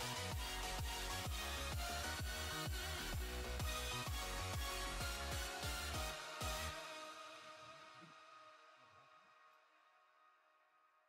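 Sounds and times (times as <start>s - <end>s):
background music: 0.0s - 10.7s.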